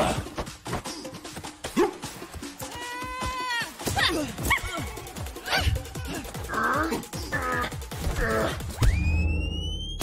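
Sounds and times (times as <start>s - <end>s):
action film music with beat: 0.0s - 10.0s.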